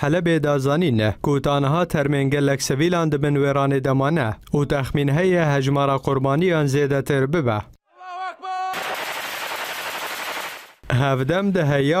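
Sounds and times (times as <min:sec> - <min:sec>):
automatic rifle fire: 0:08.7 - 0:10.8.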